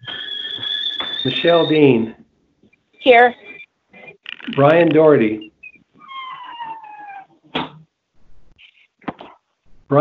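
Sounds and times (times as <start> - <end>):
animal cry sliding downward: 6.0 - 7.4.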